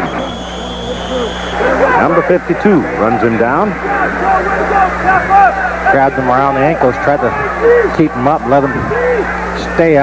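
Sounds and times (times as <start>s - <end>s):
referee's whistle: 0.0s - 2.3s
low hum: 0.0s - 10.0s
stadium crowd noise: 0.0s - 10.0s.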